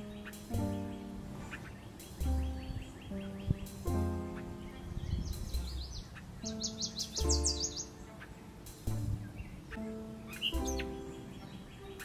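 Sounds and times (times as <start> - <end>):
background music with held chords: 0.0 - 12.0
songbird chirps and trills: 0.0 - 12.0.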